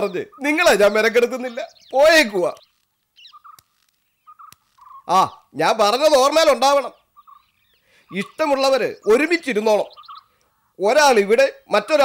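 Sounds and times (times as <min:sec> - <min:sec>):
faint bird chirps: 0:00.0 - 0:12.0
faint clicks: 0:02.4 - 0:05.0, 0:10.1 - 0:10.6.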